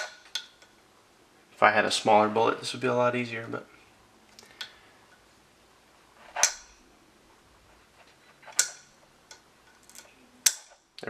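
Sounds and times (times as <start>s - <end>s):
metal sight post clicks: 6.4s - 6.8s, 8.5s - 10.8s.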